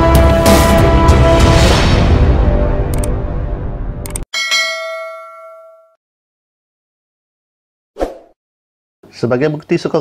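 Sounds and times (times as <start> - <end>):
bright bell chime: 4.4 - 6.0.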